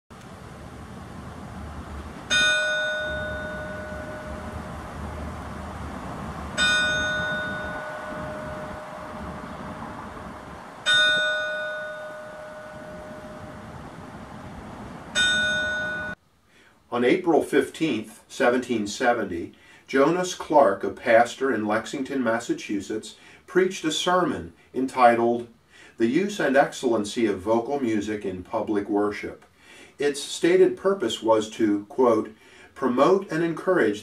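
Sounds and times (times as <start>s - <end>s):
church bell tolling: 2.3s - 4.8s, 6.6s - 10.0s, 10.8s - 14.0s, 15.2s - 16.2s.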